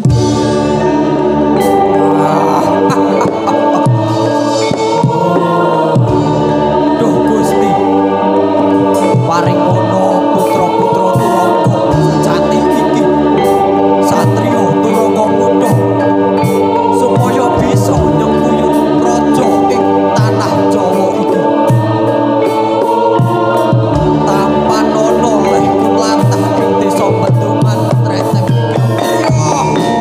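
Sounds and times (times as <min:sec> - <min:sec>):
gamelan music: 0:00.0 - 0:30.0
sustained held notes: 0:00.0 - 0:30.0
voices singing: 0:00.0 - 0:30.0.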